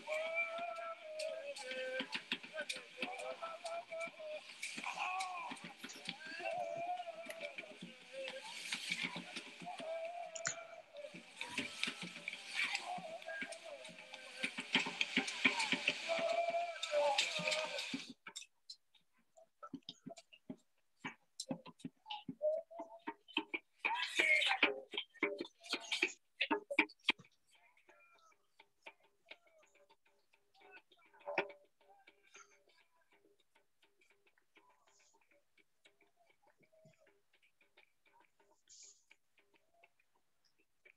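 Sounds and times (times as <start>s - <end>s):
rattling and clicking percussion: 0.0s - 19.0s
faint rhythmic ticking: 0.0s - 40.9s.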